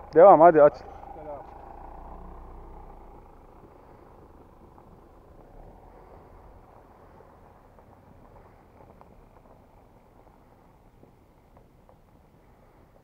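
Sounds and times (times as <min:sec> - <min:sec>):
vehicle driving on dirt track: 0:00.0 - 0:13.0.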